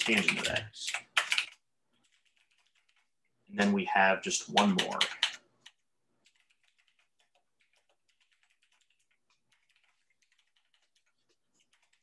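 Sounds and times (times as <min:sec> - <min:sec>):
typing on computer keyboard: 0:00.0 - 0:03.2, 0:04.5 - 0:12.0.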